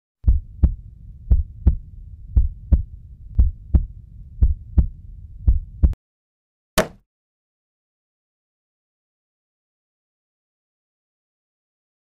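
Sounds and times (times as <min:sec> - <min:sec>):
heartbeat double thumps: 0:00.2 - 0:06.0
low rumble: 0:00.2 - 0:06.0.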